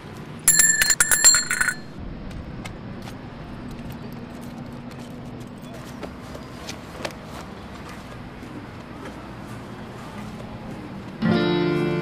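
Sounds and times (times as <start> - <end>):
small metal bell ringing: 0.5 - 2.0.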